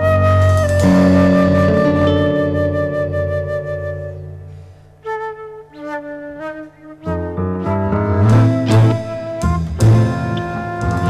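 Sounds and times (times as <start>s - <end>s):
bowed double bass: 0.0s - 4.3s, 7.3s - 11.0s
flute holding long notes: 0.0s - 11.0s
nylon-string guitar: 0.6s - 4.7s, 7.1s - 11.0s.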